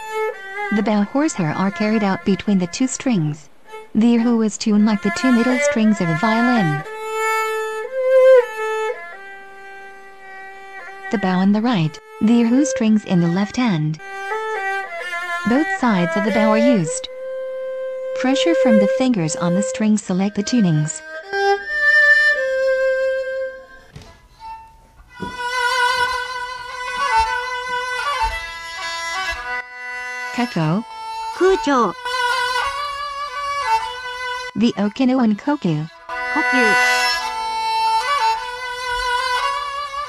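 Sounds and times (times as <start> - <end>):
erhu bowed notes: 0.0 - 40.0.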